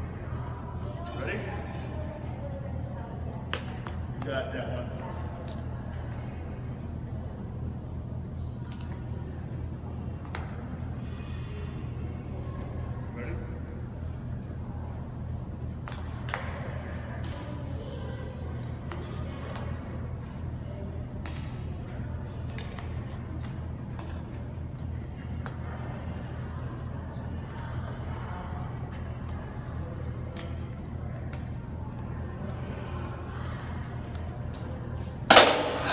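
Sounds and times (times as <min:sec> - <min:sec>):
steady low hum: 0:00.0 - 0:35.9
rackets striking shuttlecocks: 0:35.3 - 0:35.9.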